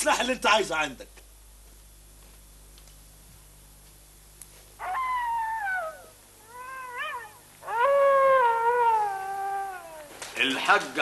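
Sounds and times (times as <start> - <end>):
animal howling: 4.8 - 10.2.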